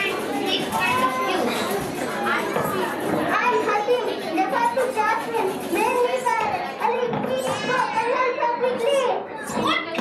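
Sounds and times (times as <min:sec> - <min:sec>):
child speaking into microphone: 0:00.0 - 0:10.0.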